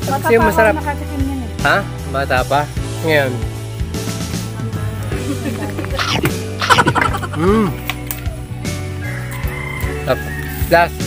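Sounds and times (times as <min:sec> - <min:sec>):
background music: 0:00.0 - 0:11.0
fowl calling: 0:05.9 - 0:10.4.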